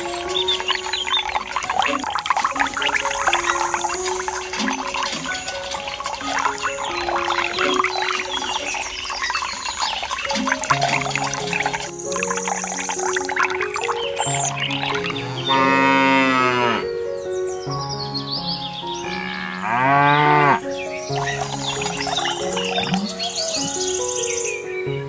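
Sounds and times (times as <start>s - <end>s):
light background music: 0.0s - 25.0s
cow mooing: 15.2s - 16.9s, 19.2s - 20.6s.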